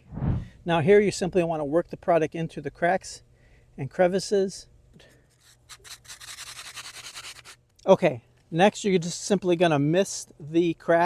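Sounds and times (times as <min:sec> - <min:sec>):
gritty sand scrubbing on concrete: 0:05.4 - 0:07.6.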